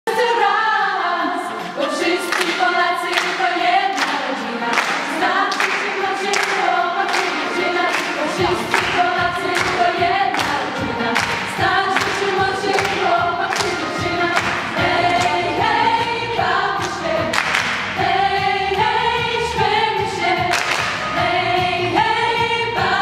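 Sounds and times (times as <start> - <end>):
choir singing: 0.1 - 23.0
hand claps: 2.3 - 15.6, 16.8 - 18.0, 20.5 - 21.0.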